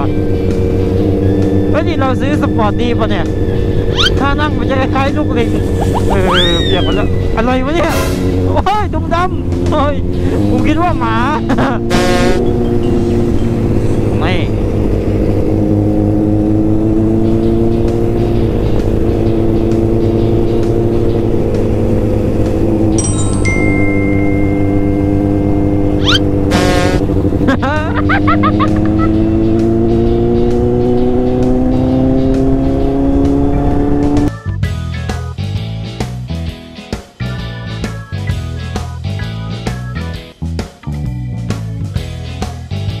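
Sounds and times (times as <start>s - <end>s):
motorcycle engine accelerating: 0.0s - 34.8s.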